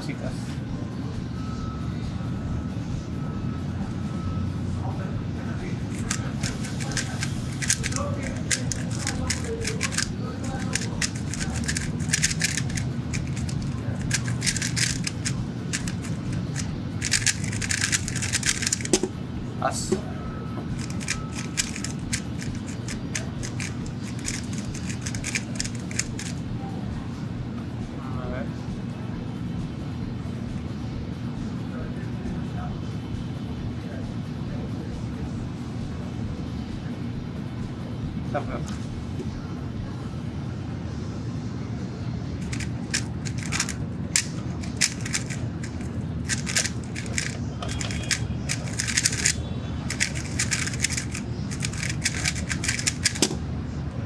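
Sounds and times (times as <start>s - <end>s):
plastic puzzle cube clicking: 5.9s - 19.1s, 20.8s - 26.4s, 42.4s - 53.3s.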